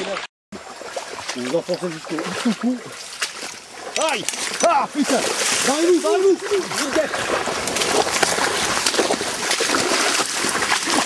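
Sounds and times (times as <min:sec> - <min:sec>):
feet splashing through water: 0:00.0 - 0:11.0
voices talking: 0:01.3 - 0:03.1, 0:03.8 - 0:07.4.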